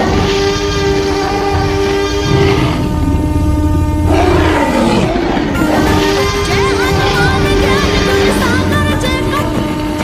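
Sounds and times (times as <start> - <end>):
falling tone: 0.0 - 10.0
moving train rumble: 0.0 - 10.0
train horn: 0.0 - 10.0.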